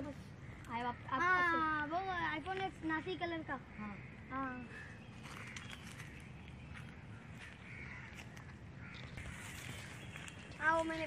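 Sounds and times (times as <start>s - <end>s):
faint bird calls: 0.0s - 11.0s
low outdoor hum: 0.0s - 11.0s
crow-like caw: 0.3s - 2.2s, 3.5s - 6.2s, 7.1s - 9.9s.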